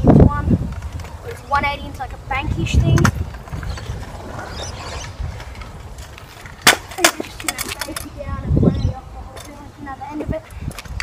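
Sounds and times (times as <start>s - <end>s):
scooter wheels rolling on concrete: 0.2s - 11.0s.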